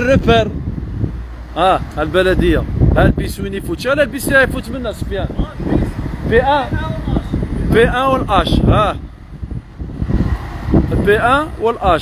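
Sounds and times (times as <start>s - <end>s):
low rumble of street traffic: 0.0s - 12.0s
wind buffeting microphone: 0.0s - 12.0s.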